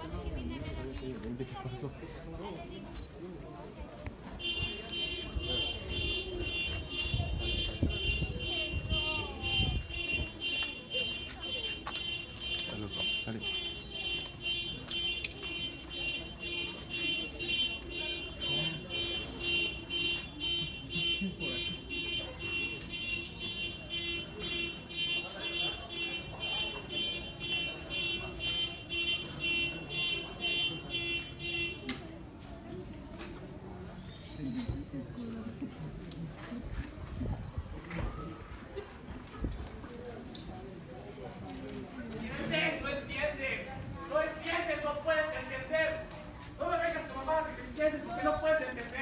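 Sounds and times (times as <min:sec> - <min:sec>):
faint voices: 0:00.0 - 0:49.0.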